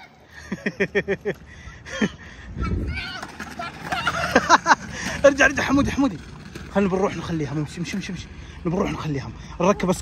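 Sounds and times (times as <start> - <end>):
children calling out: 0.0 - 0.6, 2.0 - 5.0.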